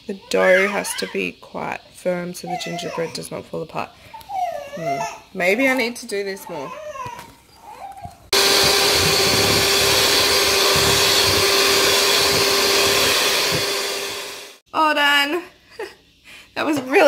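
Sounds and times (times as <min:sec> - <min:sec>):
electric hand mixer humming: 0:08.3 - 0:14.6.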